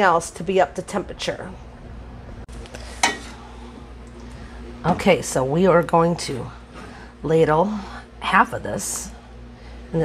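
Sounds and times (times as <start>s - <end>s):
steady low hum: 0.0s - 10.0s
utensil clinking on steel pot: 3.0s - 3.3s.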